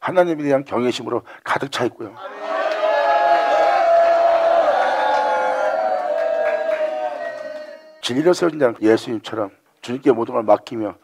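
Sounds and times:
long held vocal cry: 2.2s - 8.0s.

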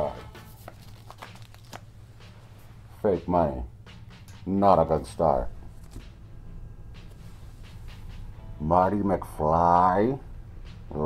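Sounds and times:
paper bills rustling: 0.1s - 2.1s, 5.7s - 6.1s.

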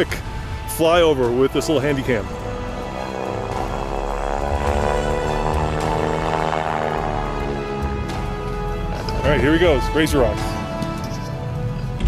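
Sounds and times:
sustained shifting chords music: 0.0s - 12.0s.

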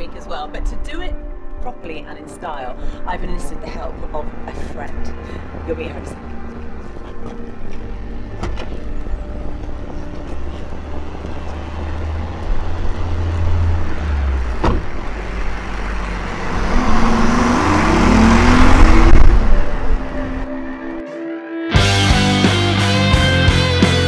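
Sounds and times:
sports car engine: 4.9s - 20.9s
car door shutting: 8.4s - 8.9s, 14.6s - 15.0s.

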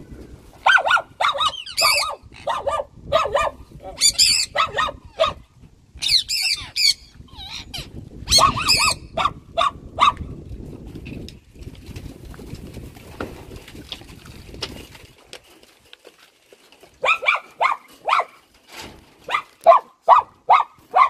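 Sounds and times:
parrots squawking: 1.3s - 2.7s, 4.0s - 5.0s, 6.0s - 9.2s.

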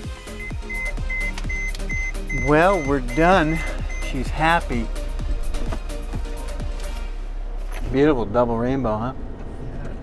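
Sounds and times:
high beeping note: 0.4s - 4.9s.

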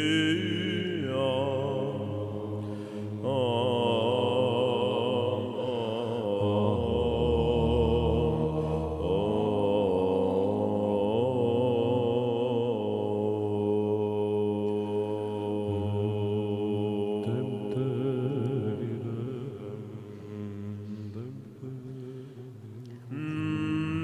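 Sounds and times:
held vocal drone: 0.0s - 24.0s
person chanting a slow melody: 0.0s - 24.0s.

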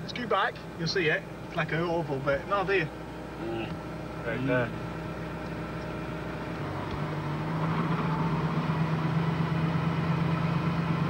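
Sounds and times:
car engine accelerating: 0.0s - 11.0s.

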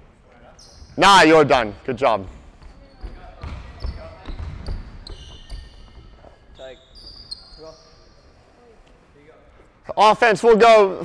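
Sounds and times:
sneakers squeaking on court: 0.5s - 1.0s, 2.2s - 8.4s
basketballs bouncing on wood floor: 2.2s - 6.4s.

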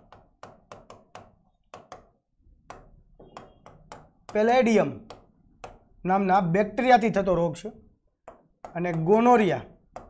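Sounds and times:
chalk tapping on chalkboard: 0.0s - 5.9s, 8.1s - 10.0s.

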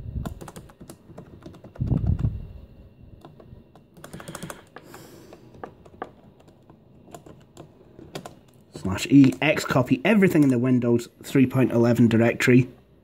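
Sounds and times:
laptop keyboard typing: 0.2s - 2.4s, 3.1s - 10.7s.

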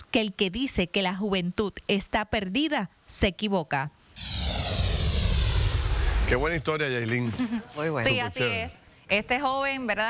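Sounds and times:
high sweep falling in pitch: 4.2s - 6.6s
whoosh with deep rumble: 4.2s - 6.7s.

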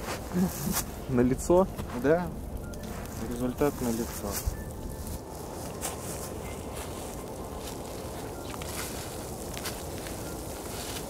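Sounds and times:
outdoor background noise in a wood: 0.0s - 11.0s.

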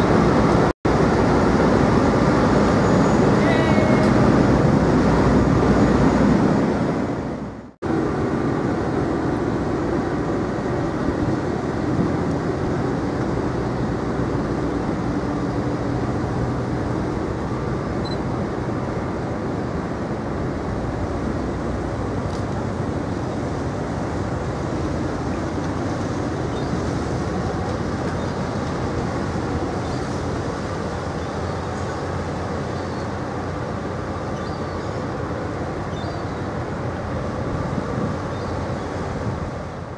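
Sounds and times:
ship diesel engines rumbling: 0.0s - 39.9s.

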